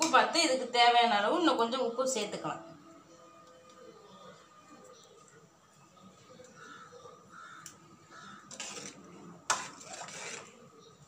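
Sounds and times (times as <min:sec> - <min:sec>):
metal ladle scraping pot: 0:08.3 - 0:10.9.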